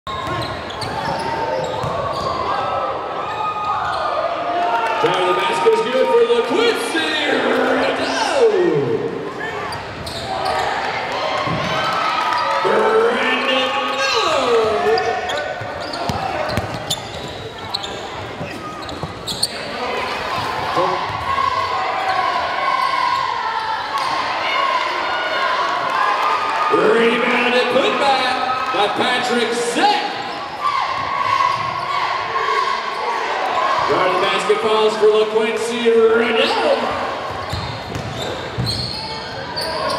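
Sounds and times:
commentator speaking: 5.0s - 9.1s, 26.8s - 30.2s, 33.9s - 37.0s
basketball bouncing on hardwood: 16.0s - 17.3s, 37.5s - 38.8s.

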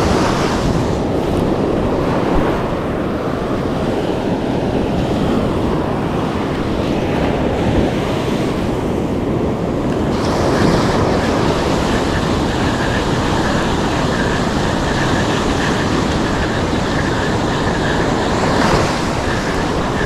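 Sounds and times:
surf breaking on beach: 0.0s - 20.0s
wind buffeting microphone: 0.0s - 20.0s.

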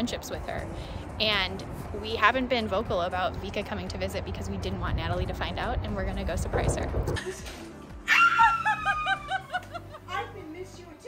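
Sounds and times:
laughter: 7.1s - 7.6s, 8.2s - 10.1s
woman squealing: 8.1s - 9.6s.

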